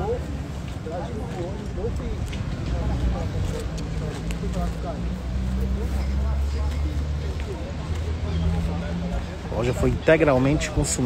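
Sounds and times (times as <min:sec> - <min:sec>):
faint voices: 0:00.0 - 0:11.0
vehicle engine rumble: 0:00.0 - 0:11.0.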